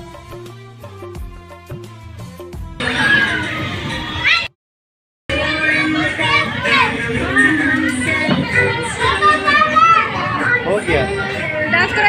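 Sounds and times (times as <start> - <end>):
children chattering and calling out: 2.8 - 4.5, 5.3 - 12.0.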